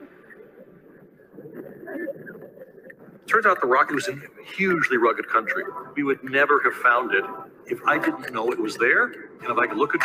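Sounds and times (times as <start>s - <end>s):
faint indistinct voices: 0.0s - 10.0s
low background noise: 0.0s - 10.0s.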